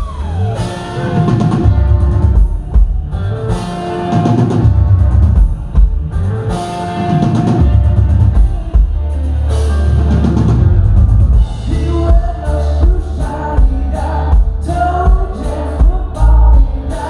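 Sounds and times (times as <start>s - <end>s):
electric guitar long notes: 0.0s - 17.0s
rock band playing live: 0.0s - 17.0s.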